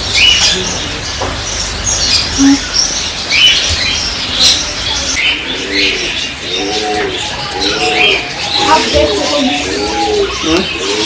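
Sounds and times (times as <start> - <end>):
small birds chirping: 0.0 - 11.0
pigeons cooing: 3.4 - 11.0.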